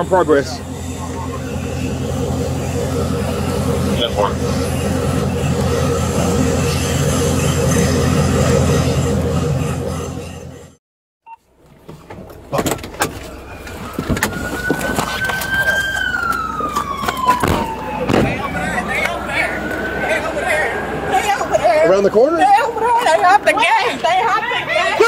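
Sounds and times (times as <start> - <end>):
police siren wailing: 0.0 - 9.6, 13.4 - 23.4.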